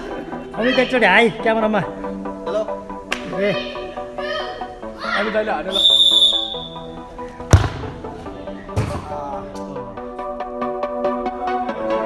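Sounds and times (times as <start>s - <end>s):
background music: 0.0s - 12.0s
football kicked thud: 7.5s - 8.0s.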